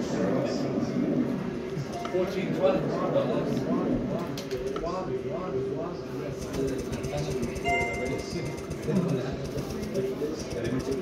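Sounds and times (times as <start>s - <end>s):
murmur of voices: 0.0s - 11.0s
electronic beep: 7.6s - 8.7s.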